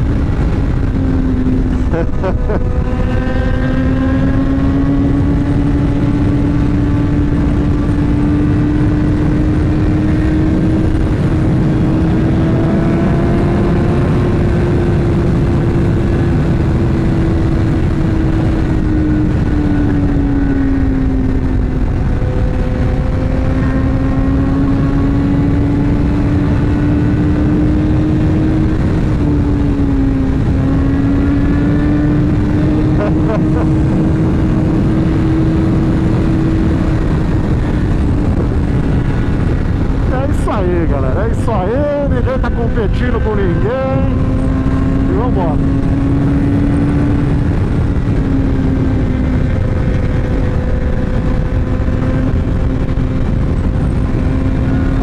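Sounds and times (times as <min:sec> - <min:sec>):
motorcycle engine cruising: 0:00.0 - 0:55.0
wind rush on microphone: 0:00.0 - 0:55.0.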